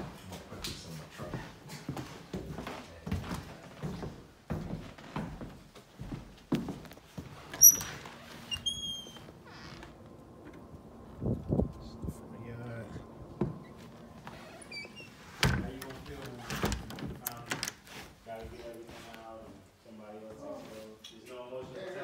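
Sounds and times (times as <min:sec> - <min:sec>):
footsteps on hardwood floor: 0:00.0 - 0:11.8, 0:13.2 - 0:17.2
door squeaking: 0:07.4 - 0:10.7, 0:13.4 - 0:17.8.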